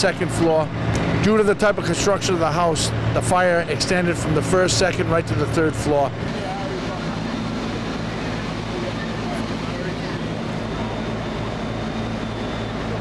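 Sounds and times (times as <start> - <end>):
constant rushing noise: 0.0 - 13.0
fire engine running: 0.0 - 13.0.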